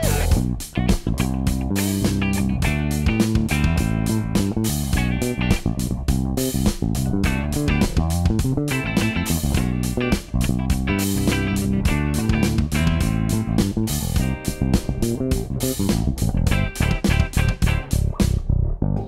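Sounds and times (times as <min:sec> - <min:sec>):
steady drum beat: 0:00.0 - 0:18.4
clean electric guitar: 0:00.0 - 0:19.0
electric bass played fingerstyle: 0:00.0 - 0:19.0.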